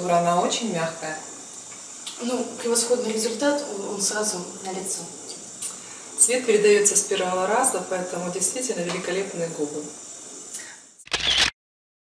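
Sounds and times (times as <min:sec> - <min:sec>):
camera shutter click: 0:11.0 - 0:11.5.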